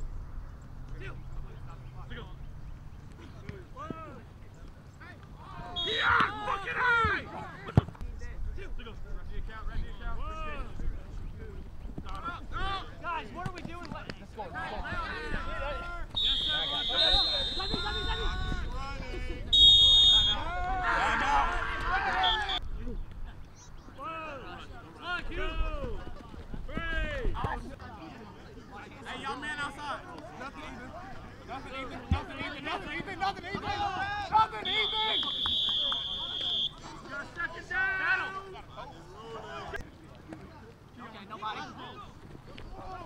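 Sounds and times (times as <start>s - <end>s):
referee's whistle blast: 5.7s - 6.3s, 16.2s - 18.6s, 19.6s - 20.5s, 22.2s - 22.6s, 34.6s - 36.8s
men shouting: 20.3s - 22.6s.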